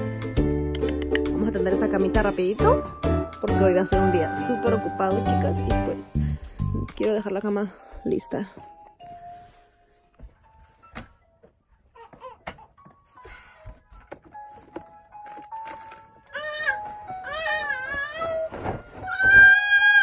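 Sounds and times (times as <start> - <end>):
background music: 0.0 - 20.0
baby crying: 11.9 - 13.5, 16.2 - 20.0.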